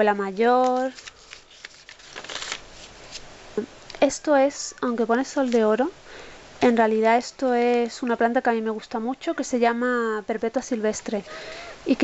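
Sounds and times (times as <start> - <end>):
paper page turning: 0.4 - 3.3, 5.4 - 5.7.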